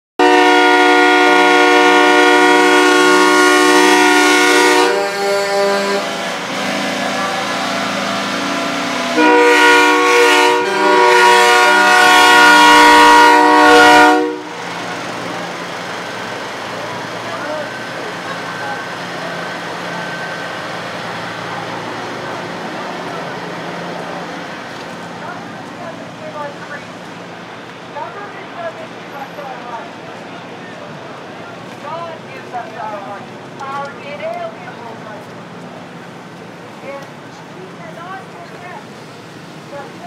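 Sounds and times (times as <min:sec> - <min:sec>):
truck air horn blasts: 0:00.2 - 0:14.6
truck engines idling: 0:00.2 - 0:40.0.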